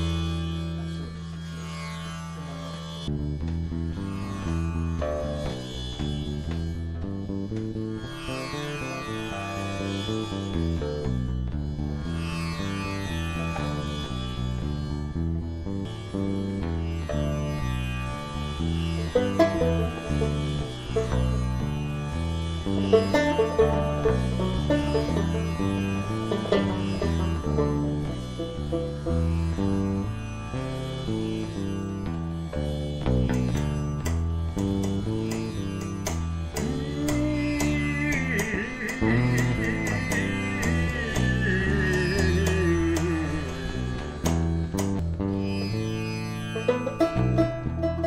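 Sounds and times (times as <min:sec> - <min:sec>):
plucked bass notes: 0:00.0 - 0:48.0
sharp plucked notes: 0:00.0 - 0:48.0
low drone: 0:02.3 - 0:48.0
whistle-like overtones: 0:37.2 - 0:44.2.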